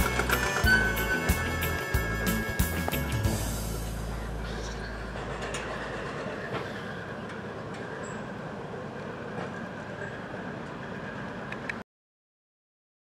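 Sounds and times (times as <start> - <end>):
small train rolling on track: 0.0 - 11.8
wheels clicking on rails: 0.0 - 11.8.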